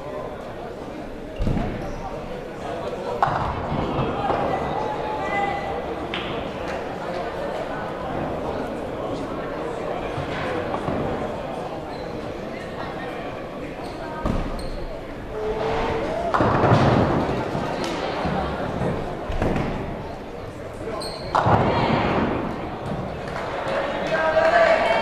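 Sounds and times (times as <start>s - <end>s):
murmur of voices: 0.0s - 25.0s.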